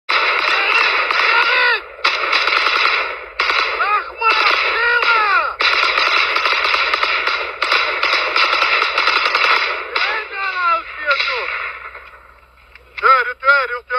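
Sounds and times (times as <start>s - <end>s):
automatic rifle fire: 0.1s - 12.3s
men shouting: 0.4s - 1.9s, 3.7s - 5.6s, 9.9s - 11.5s.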